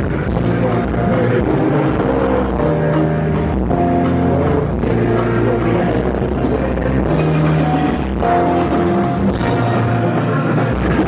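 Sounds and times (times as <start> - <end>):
live concert music: 0.0 - 11.0
people singing into microphones: 0.0 - 11.0.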